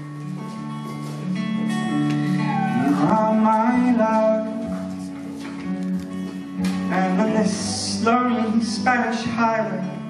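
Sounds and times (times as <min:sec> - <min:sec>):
acoustic guitar playing: 0:00.0 - 0:10.0
man singing: 0:02.8 - 0:05.1, 0:06.8 - 0:10.0.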